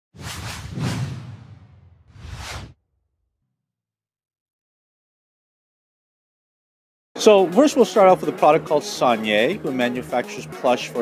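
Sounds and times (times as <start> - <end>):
whoosh swishes: 0.1 - 2.8.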